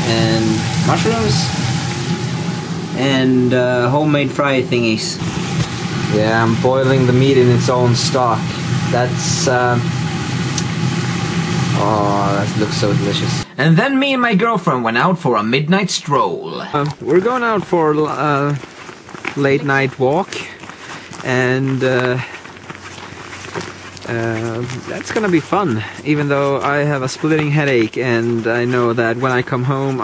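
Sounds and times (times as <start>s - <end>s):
person saying uh: 0.0s - 1.5s, 16.1s - 18.5s
footsteps on snow: 0.0s - 12.9s, 16.8s - 30.0s
low mechanical hum: 0.0s - 13.5s
meat sizzling in a frying pan: 0.0s - 13.5s, 17.0s - 30.0s.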